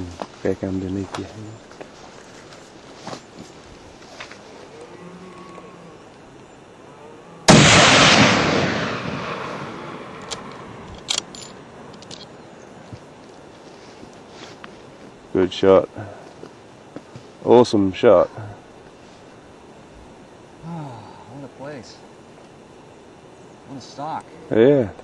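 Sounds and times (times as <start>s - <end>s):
rifle shot echoing: 7.5s - 11.3s.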